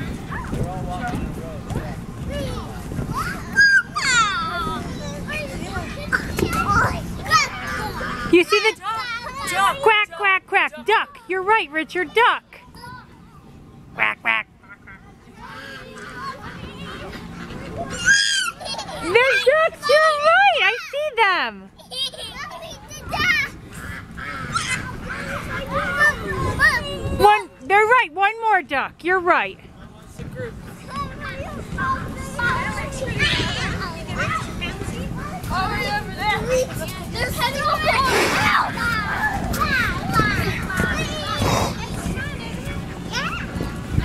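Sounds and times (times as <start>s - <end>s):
young children calling and chattering: 0.0s - 44.0s
quack-like calls: 14.0s - 14.5s, 23.8s - 24.6s.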